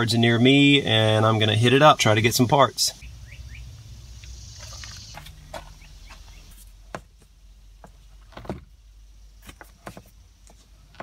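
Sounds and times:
low rumble: 0:02.9 - 0:06.9
short rising chirps: 0:03.0 - 0:06.6.

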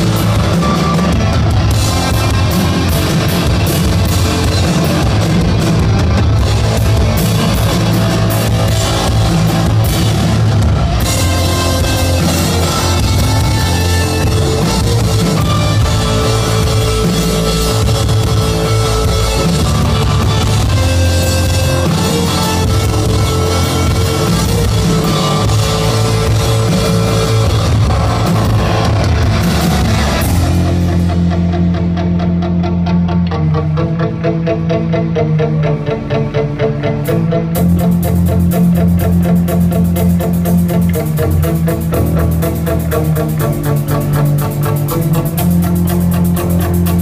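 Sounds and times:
drum kit and cymbals: 0:00.0 - 0:31.7, 0:37.6 - 0:47.0
bass guitar: 0:00.0 - 0:47.0
electric guitar: 0:00.0 - 0:47.0.

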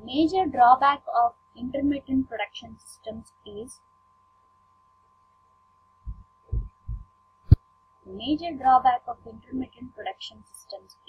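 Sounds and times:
short low thumps: 0:06.1 - 0:07.6.

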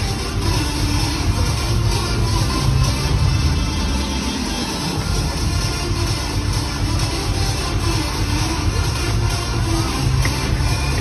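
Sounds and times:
bass-heavy music over pa system: 0:00.0 - 0:11.0.

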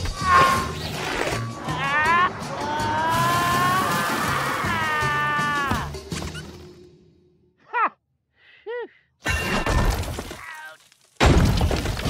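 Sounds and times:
loud crash with shattering: 0:11.2 - 0:12.0.

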